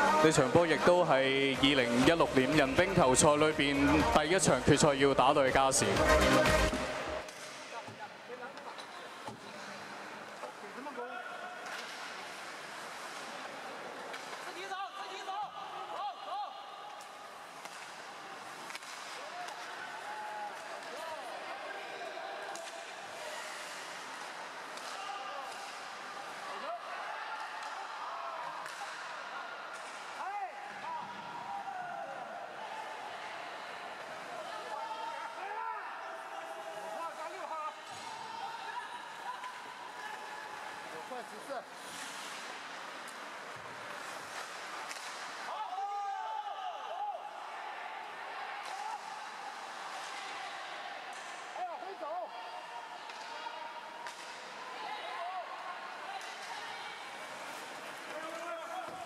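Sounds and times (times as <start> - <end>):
crowd chatting and calling out: 0.0 - 7.3
hockey sticks and puck knocking: 41.8 - 45.5.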